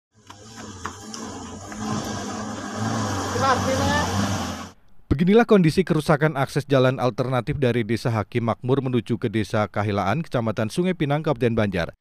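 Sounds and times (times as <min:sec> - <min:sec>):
truck engine approaching: 0:00.1 - 0:04.8
person's voice: 0:03.3 - 0:04.2.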